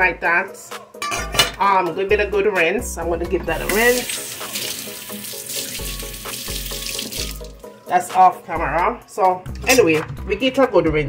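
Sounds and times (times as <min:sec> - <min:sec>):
music playing: 0:00.0 - 0:11.0
water running from a tap: 0:03.5 - 0:07.8.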